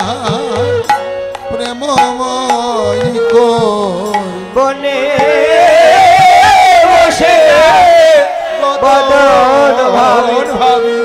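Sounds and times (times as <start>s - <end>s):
voices holding long high note: 4.1s - 11.0s.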